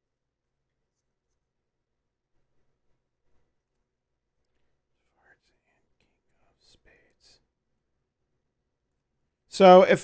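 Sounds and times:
man whispering: 0:04.5 - 0:07.6.

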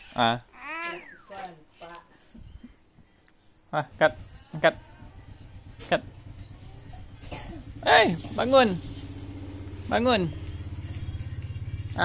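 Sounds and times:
steady low pulsing hum: 0:03.9 - 0:11.9.

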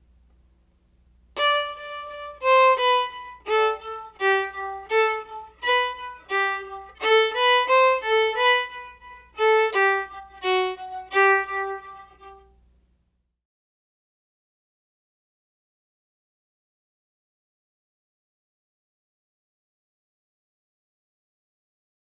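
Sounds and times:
solo violin short bowed notes: 0:01.4 - 0:12.6.

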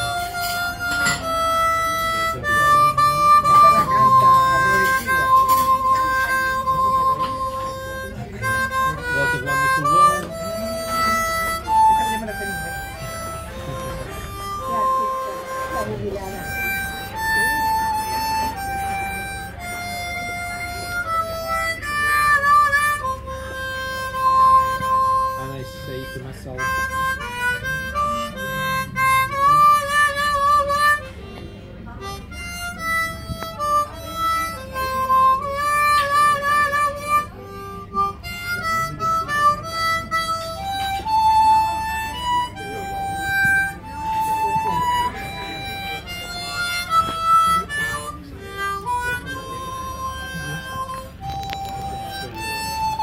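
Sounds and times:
harmonica melody: 0:00.0 - 0:53.0.

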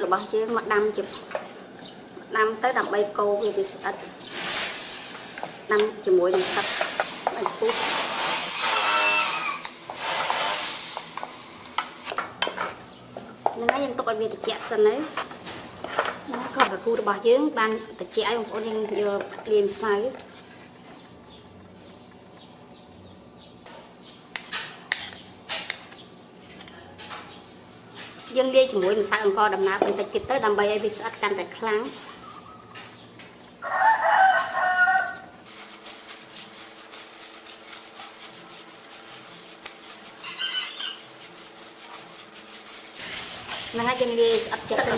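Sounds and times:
rooster crowing: 0:33.6 - 0:35.4, 0:40.2 - 0:41.0
wet churning stirring: 0:35.5 - 0:44.9.

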